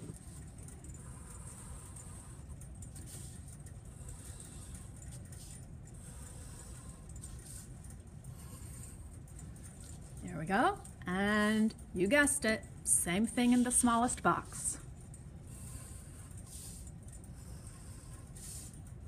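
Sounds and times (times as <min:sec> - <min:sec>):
low room hum: 0:00.0 - 0:19.0.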